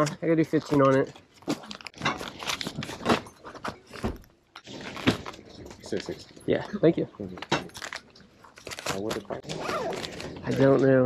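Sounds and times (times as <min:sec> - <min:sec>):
crackling handling noise: 0:07.3 - 0:11.0.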